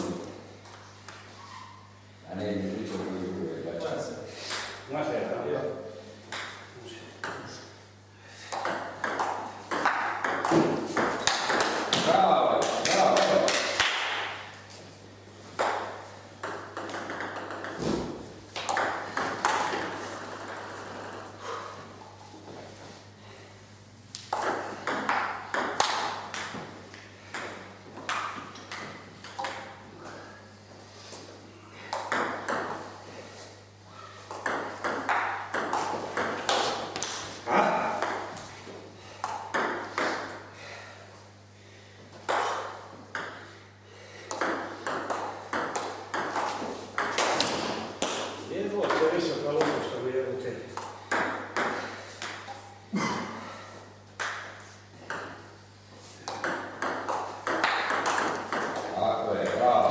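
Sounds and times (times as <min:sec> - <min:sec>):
ping pong ball clicking off paddles: 0:04.5 - 0:04.8, 0:06.3 - 0:07.7, 0:08.5 - 0:14.4, 0:15.6 - 0:21.4, 0:24.1 - 0:29.8, 0:31.9 - 0:32.9, 0:34.3 - 0:38.5, 0:39.2 - 0:40.5, 0:42.2 - 0:43.5, 0:44.3 - 0:50.0, 0:50.7 - 0:52.7, 0:54.2 - 0:55.5, 0:56.2 - 0:59.8.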